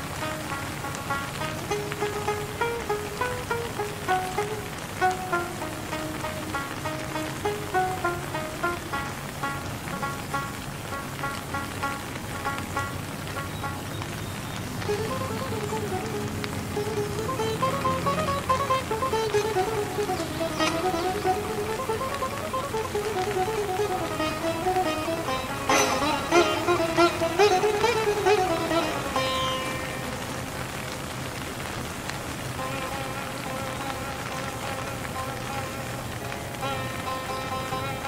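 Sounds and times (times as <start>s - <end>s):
rain falling: 0.0s - 38.0s
slow indian instrumental music: 0.0s - 38.0s.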